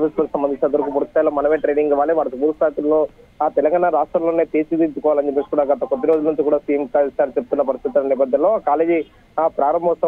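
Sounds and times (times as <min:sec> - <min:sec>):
man reading narration: 0:00.0 - 0:10.0.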